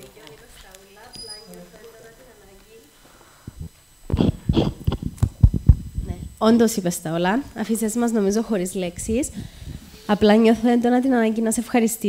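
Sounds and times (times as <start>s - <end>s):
person laughing: 4.1s - 5.2s.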